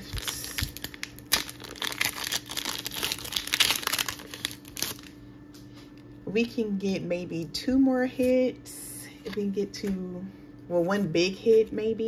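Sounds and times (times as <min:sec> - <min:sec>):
foil wrapper tearing and crinkling: 0:00.0 - 0:05.2.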